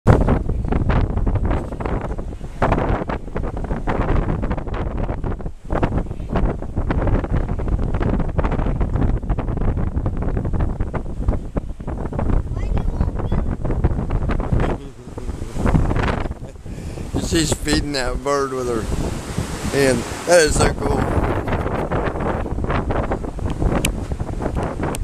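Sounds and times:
surf washing against pilings: 0:00.1 - 0:25.0
wind buffeting microphone: 0:00.1 - 0:25.0.

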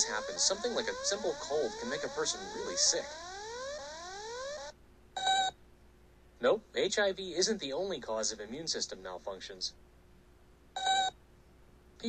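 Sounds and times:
electronic tones sweeping upward: 0:00.0 - 0:04.7.

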